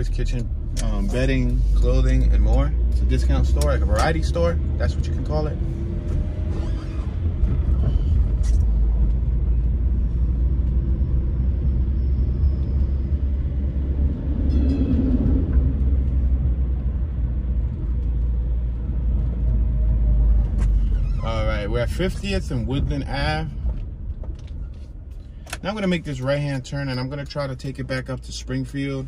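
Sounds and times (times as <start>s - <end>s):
car cabin road rumble: 0.0s - 29.0s
streetcar passing: 8.8s - 20.4s.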